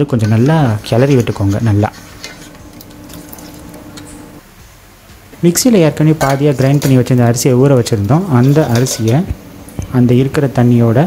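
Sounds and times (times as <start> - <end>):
ladle clinking and scraping pot: 0.2 - 4.3, 6.2 - 7.2, 8.3 - 9.3.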